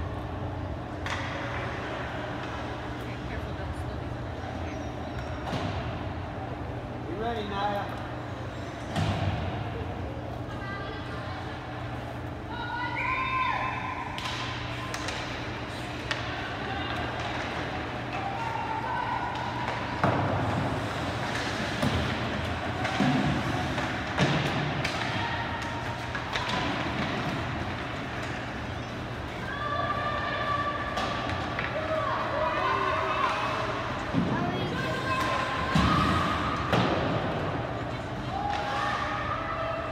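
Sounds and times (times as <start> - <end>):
hockey knocks against boards: 19.3 - 28.4.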